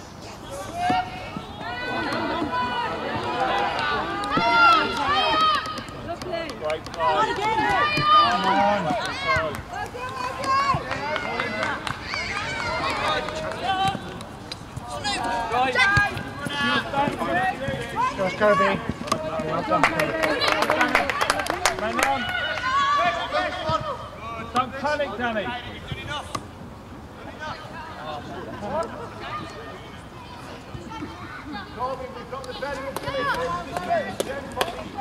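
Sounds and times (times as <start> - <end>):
young voices shouting: 0.5 - 6.0, 7.0 - 14.2, 14.8 - 24.2, 27.6 - 35.0.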